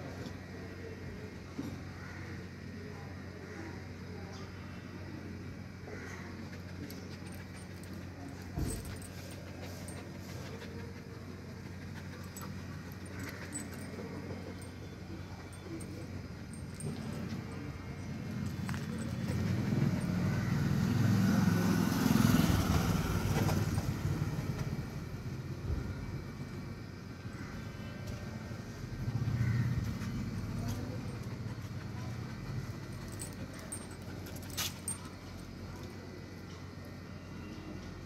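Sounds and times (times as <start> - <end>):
steady low hum: 2.5 - 21.0
metal chain clinks: 7.2 - 10.6, 12.0 - 14.8, 15.4 - 20.3, 30.6 - 35.9
vehicle passing by: 18.2 - 25.2.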